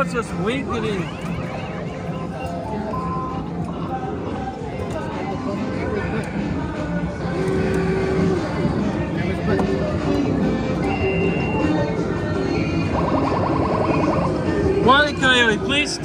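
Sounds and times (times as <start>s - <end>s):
electronic game tones and jingles: 0.0s - 3.5s
crowd chatter: 0.0s - 16.0s.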